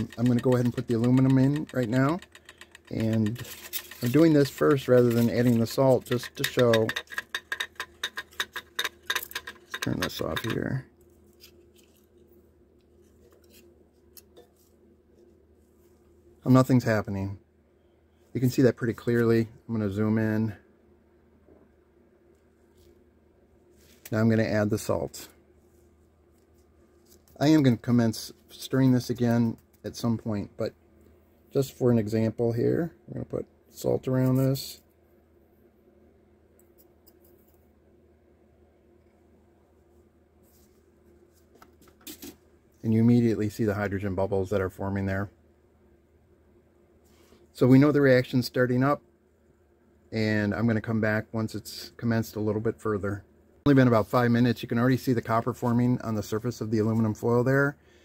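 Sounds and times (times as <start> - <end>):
faint room hum: 0.0 - 58.0.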